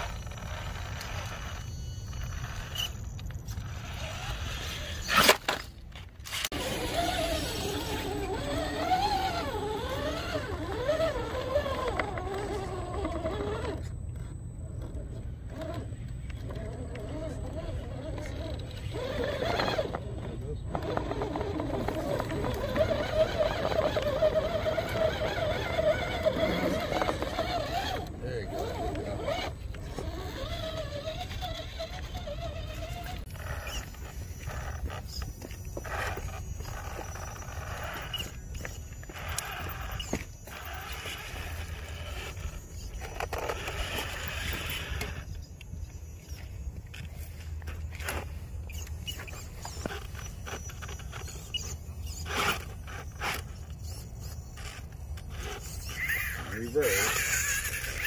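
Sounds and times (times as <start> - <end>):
electric motor and gears whining: 0.0 - 58.0
tyres clicking and scraping on rock: 0.0 - 58.0.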